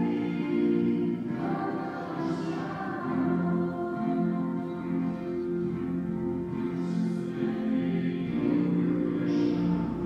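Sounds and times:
group singing a hymn: 0:00.0 - 0:10.0.

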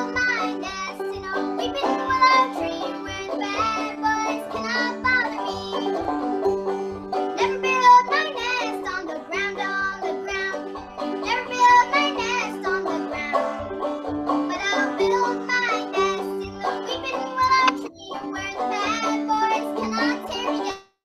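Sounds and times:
girl singing: 0:00.0 - 0:06.1, 0:07.3 - 0:13.6, 0:14.5 - 0:20.9
banjo picking: 0:00.0 - 0:20.9.

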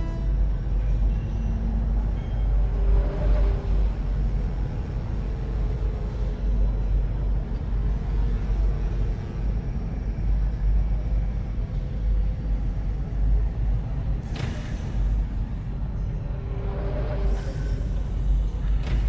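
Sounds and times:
deep machinery rumble: 0:00.0 - 0:19.0
pneumatic air hiss: 0:14.2 - 0:15.2.

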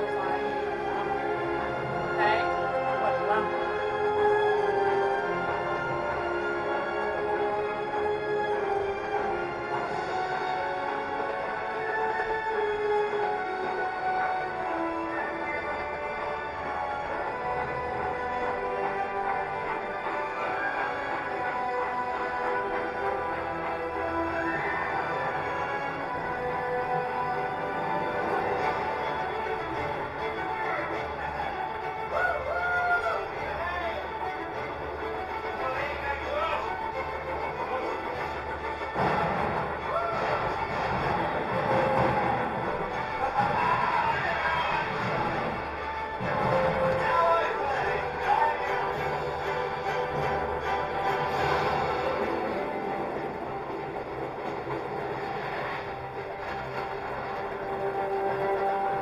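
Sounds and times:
music with voices: 0:00.0 - 0:59.0
ride carriage running on track: 0:00.0 - 0:59.0.

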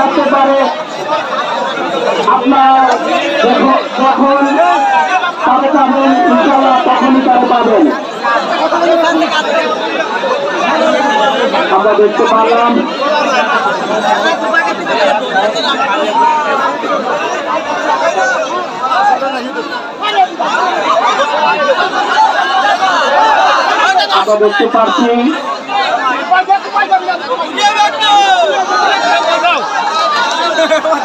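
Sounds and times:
crowd chattering loudly: 0:00.0 - 0:31.0.

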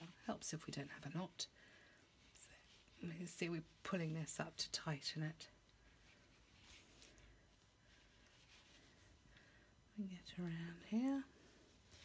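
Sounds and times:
rustling of yarn and fabric: 0:00.0 - 0:12.0.

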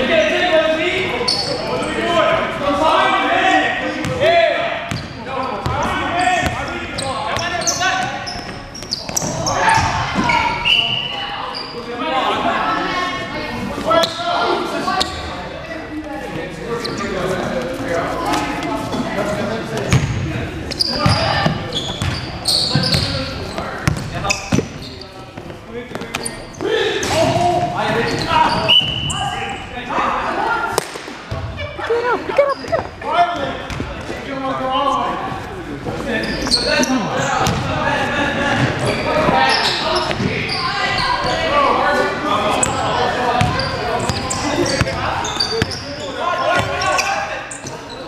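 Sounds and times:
sneaker squeaks: 0:01.0 - 0:02.1, 0:04.8 - 0:12.0, 0:13.8 - 0:15.4, 0:16.6 - 0:30.3, 0:31.3 - 0:41.8, 0:42.5 - 0:48.0
basketball bouncing on court: 0:06.4 - 0:06.6, 0:19.9 - 0:20.2, 0:21.0 - 0:23.2, 0:23.8 - 0:24.8, 0:32.7 - 0:34.0, 0:37.4 - 0:37.7, 0:43.4 - 0:45.0
players calling out: 0:26.1 - 0:48.0.

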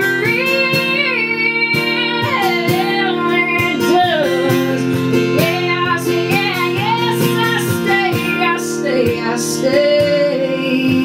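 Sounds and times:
strummed acoustic guitar: 0:00.0 - 0:11.0
woman singing slow notes: 0:05.4 - 0:11.0.

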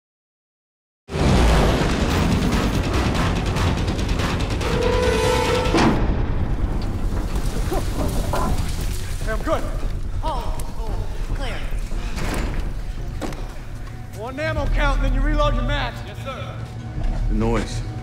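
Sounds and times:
music: 0:01.1 - 0:18.0.

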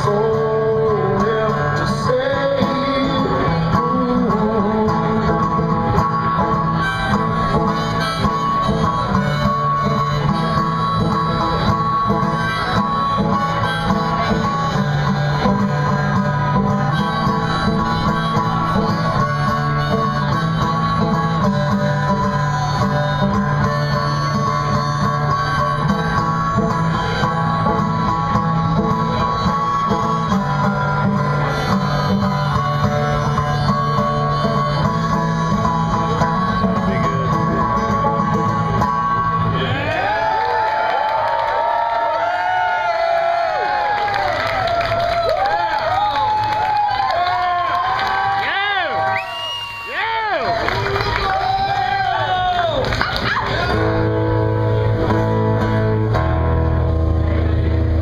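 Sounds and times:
banjo picking: 0:00.0 - 0:39.6
harmonica long notes: 0:00.0 - 0:40.4.

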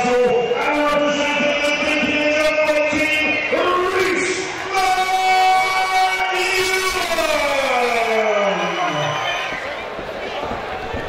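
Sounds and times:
crowd noise in a hall: 0:00.0 - 0:11.0.

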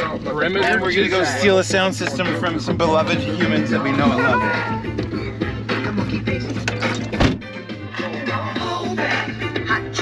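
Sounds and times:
music over car stereo: 0:00.0 - 0:10.0
sharp thump: 0:07.2 - 0:07.4.

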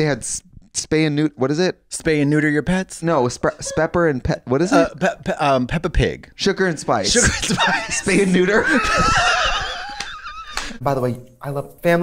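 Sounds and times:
people laughing: 0:06.9 - 0:10.8.

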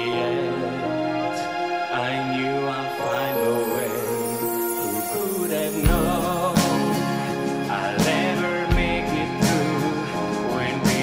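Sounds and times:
man singing into a microphone: 0:00.0 - 0:11.0
backing chords: 0:02.8 - 0:08.0.

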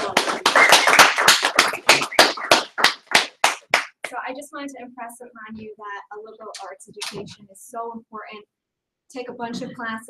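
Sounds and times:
audience applauding: 0:00.0 - 0:04.1.

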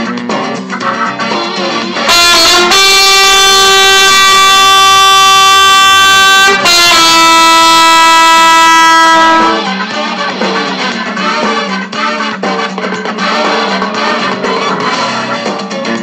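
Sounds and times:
trumpet playing held notes: 0:01.9 - 0:15.6.

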